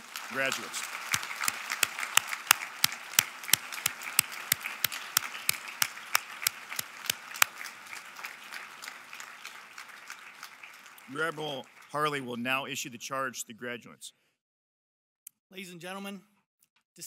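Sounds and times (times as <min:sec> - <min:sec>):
sharp close hand claps: 0:00.0 - 0:12.0
audience applauding: 0:00.0 - 0:12.8.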